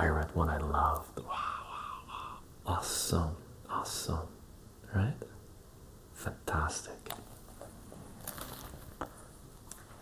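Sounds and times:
book being handled: 0:07.2 - 0:10.0.

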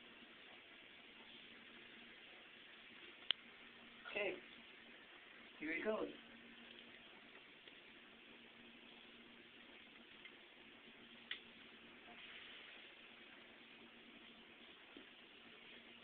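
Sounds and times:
faint electrical hum: 0:00.0 - 0:16.0
small sharp click: 0:11.3 - 0:11.5.

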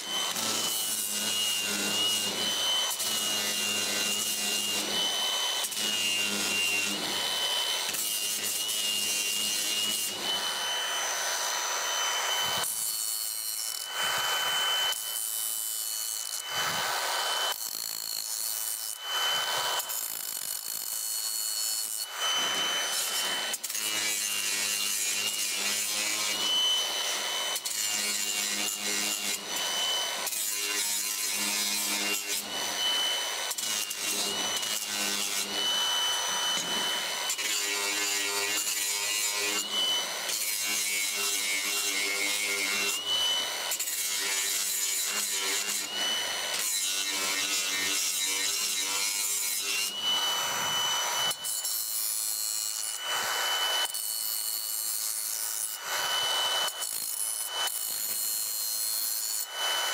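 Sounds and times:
angle grinder grinding steel: 0:00.0 - 0:59.9.

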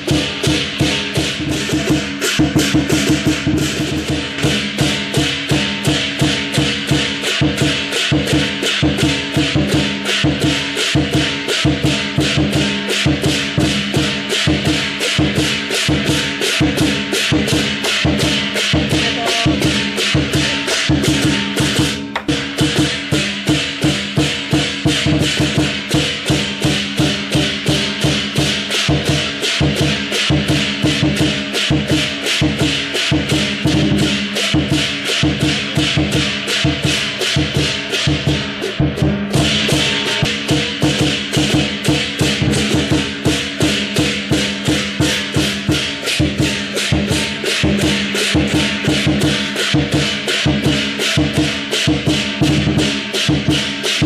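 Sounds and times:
cymbals clashing: 0:00.0 - 0:54.0
gong: 0:00.0 - 0:54.0
large drum beating: 0:00.0 - 0:54.0.

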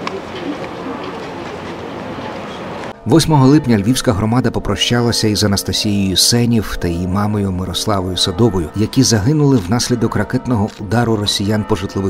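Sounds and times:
city street background noise: 0:00.0 - 0:12.0.

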